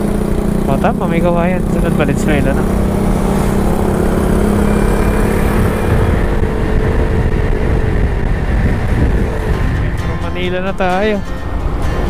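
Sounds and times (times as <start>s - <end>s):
scooter engine running: 0.0s - 12.0s
wind and road noise: 0.0s - 12.0s.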